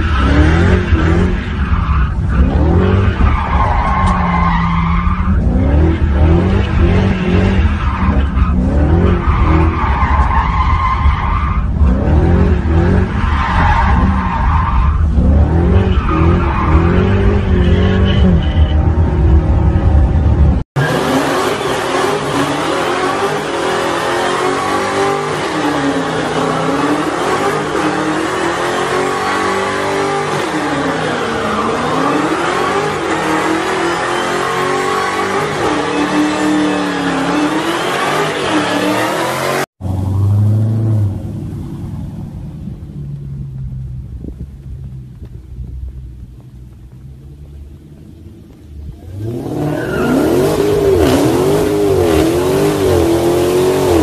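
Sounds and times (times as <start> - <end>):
car engine revving: 0.0 - 54.0
another car engine revving: 48.8 - 54.0.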